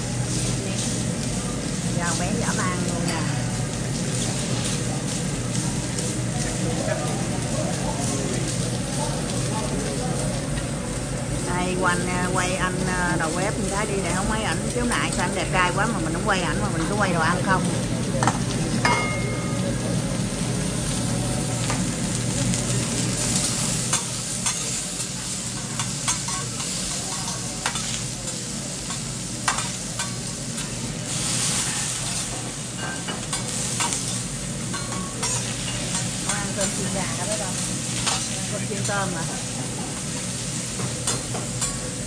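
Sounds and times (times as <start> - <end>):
food sizzling on griddle: 0.0 - 42.0.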